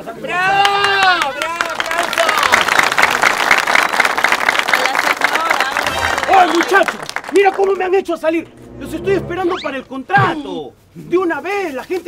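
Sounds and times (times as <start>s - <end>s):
studio audience applauding: 0.6s - 8.1s.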